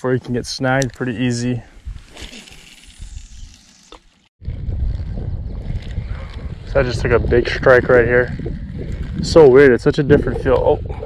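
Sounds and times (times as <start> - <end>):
wind buffeting microphone: 4.4 - 11.0.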